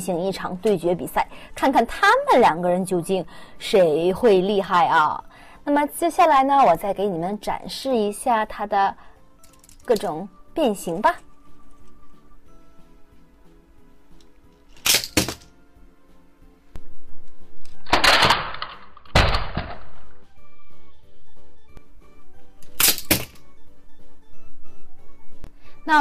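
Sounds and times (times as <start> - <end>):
background music: 0.0 - 26.0
plastic toy car springing open: 14.7 - 15.5, 17.8 - 19.8, 22.6 - 23.4.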